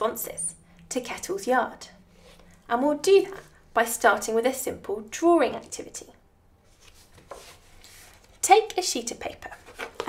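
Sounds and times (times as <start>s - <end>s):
clipboard paper rustling: 6.7s - 8.4s, 9.4s - 10.0s.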